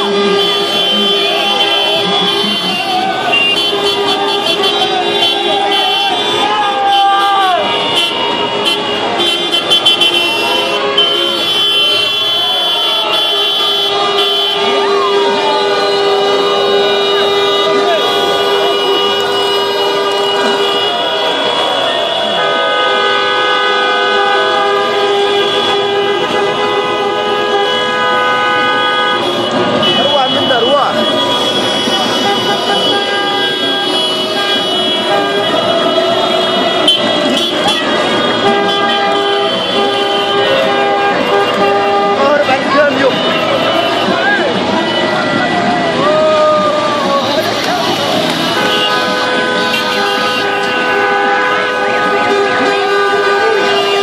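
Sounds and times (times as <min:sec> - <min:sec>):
car horns honking: 0:00.0 - 0:54.0
crowd shouting: 0:00.0 - 0:54.0.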